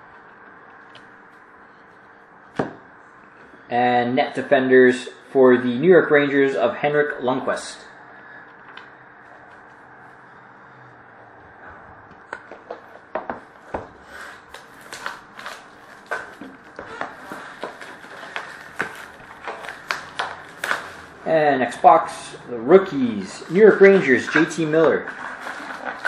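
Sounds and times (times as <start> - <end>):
foil packs being handled: 14.2 - 21.2, 23.3 - 26.0.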